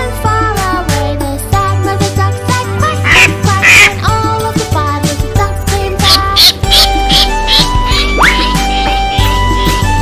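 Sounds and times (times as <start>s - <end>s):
children's song music: 0.0s - 10.0s
cartoon duck quacking: 2.9s - 4.1s, 6.0s - 9.8s.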